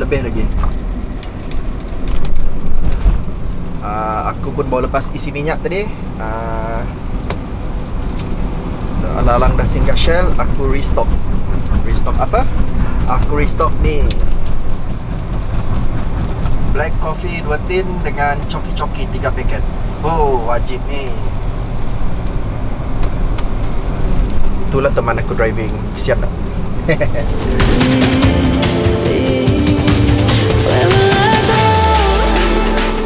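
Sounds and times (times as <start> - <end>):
road and engine rumble in car: 0.0 - 33.0.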